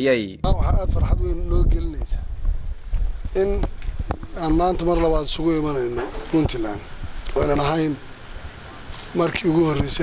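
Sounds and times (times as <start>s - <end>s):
wind rumbling on microphone: 0.4s - 10.0s.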